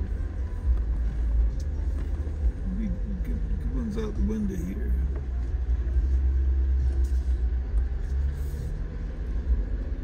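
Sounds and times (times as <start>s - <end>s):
vehicle rumbling on dirt road: 0.0s - 10.0s.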